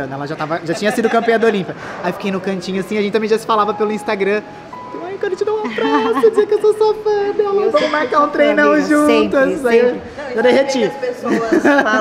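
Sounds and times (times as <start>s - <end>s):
background music: 3.2s - 10.1s
women's voices: 7.7s - 10.4s.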